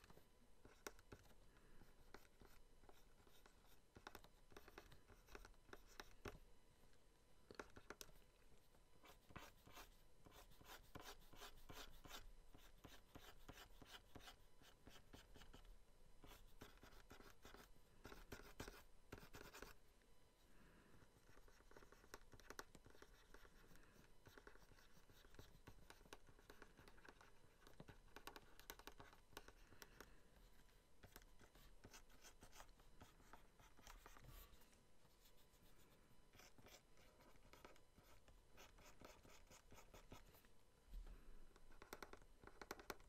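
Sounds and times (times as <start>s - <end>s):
stylus scratching on pen tablet: 0.0s - 6.4s, 9.0s - 19.8s, 21.1s - 40.4s.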